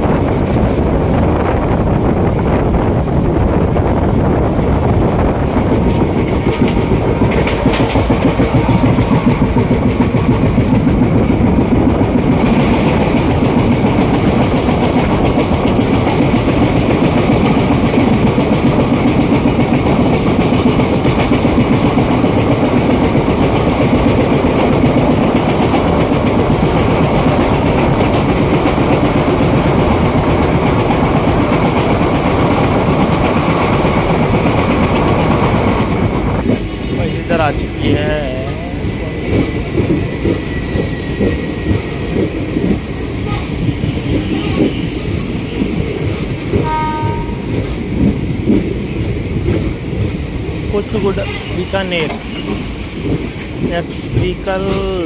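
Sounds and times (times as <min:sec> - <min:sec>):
passing train: 0:00.0 - 0:55.0
train wheels clattering on rails: 0:00.0 - 0:55.0.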